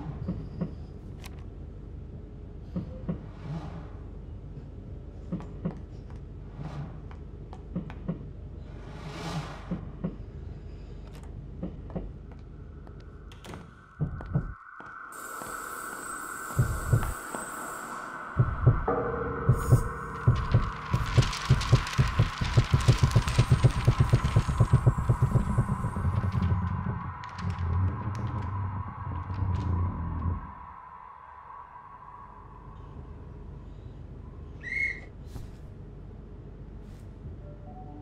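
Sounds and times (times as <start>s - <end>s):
low rumble: 16.6s - 17.2s, 18.4s - 34.6s
rapid deep thumps: 19.5s - 26.9s.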